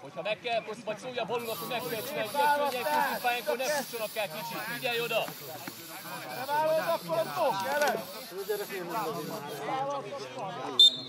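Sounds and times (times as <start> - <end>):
men calling and talking: 0.0 - 10.8
steady hiss: 1.4 - 9.7.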